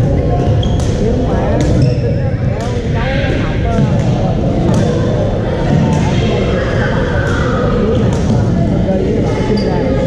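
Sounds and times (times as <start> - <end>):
people talking in echoing hall: 0.0 - 10.0.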